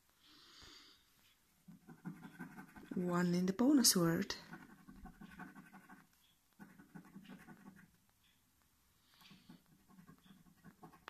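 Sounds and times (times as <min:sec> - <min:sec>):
soft breath: 0:00.1 - 0:01.4.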